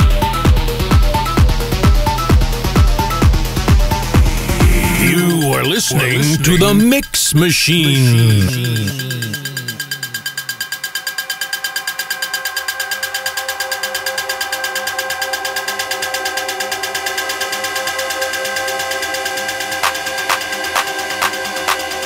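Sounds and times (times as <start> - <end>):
pulsing synth: 3.0 - 7.1, 7.7 - 11.0
falling pitch sweep: 3.7 - 5.5
held synth tones: 3.8 - 10.8.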